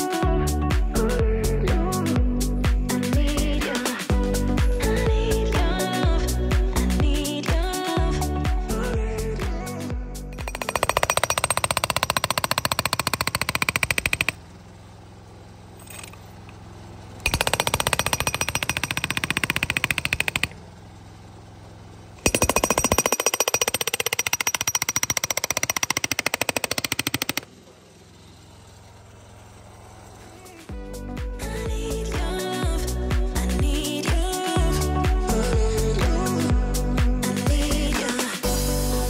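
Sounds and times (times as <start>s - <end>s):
hydraulic breaker hammering concrete: 10.4s - 14.4s, 17.2s - 20.6s, 22.2s - 27.5s.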